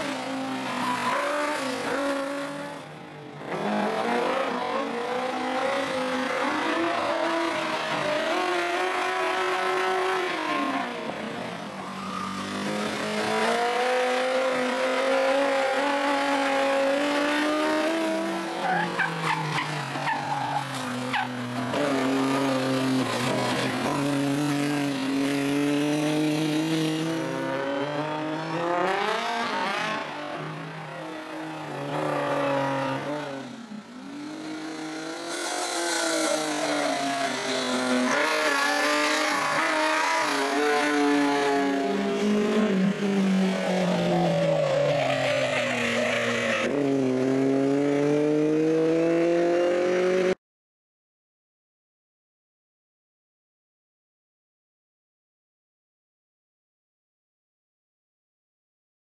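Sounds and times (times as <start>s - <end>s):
racing car engines revving: 0.0s - 50.4s.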